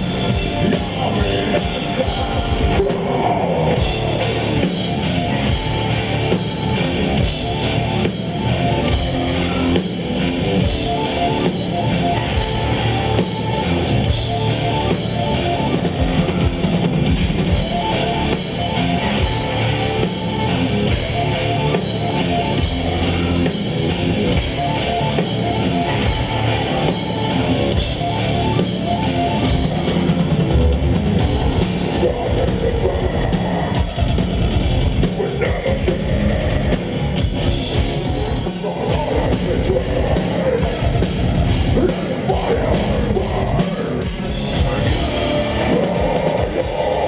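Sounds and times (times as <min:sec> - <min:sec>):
drum kit: 0:00.0 - 0:47.0
electric guitars: 0:00.0 - 0:47.0.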